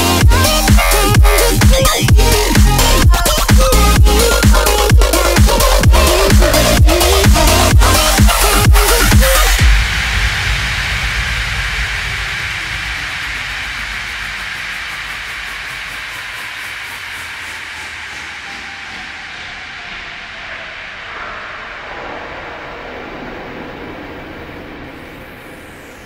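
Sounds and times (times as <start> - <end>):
hissing sweep of filtered noise: 0.0 - 26.0
faint falling pitch sweep: 0.8 - 26.0.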